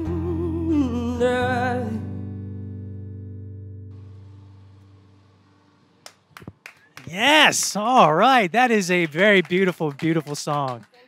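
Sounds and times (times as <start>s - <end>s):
guitar chord ringing: 0.0s - 5.8s.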